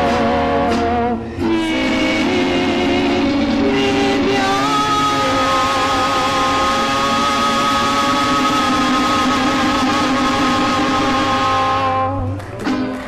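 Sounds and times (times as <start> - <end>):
instrumental backing: 0.0 - 13.0
women singing in harmony: 1.4 - 11.7.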